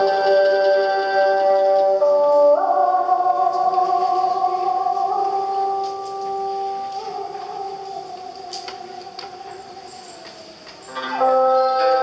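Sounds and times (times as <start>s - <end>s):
plucked string notes: 10.8s - 12.0s.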